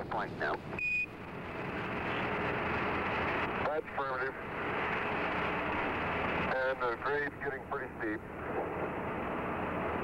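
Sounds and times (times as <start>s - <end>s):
radio hiss: 0.0s - 0.7s, 6.5s - 8.9s.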